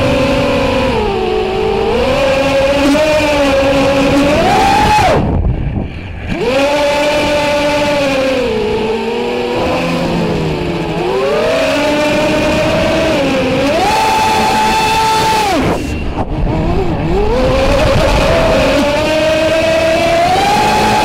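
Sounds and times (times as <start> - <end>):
quadcopter motors whining: 0.0 - 21.0.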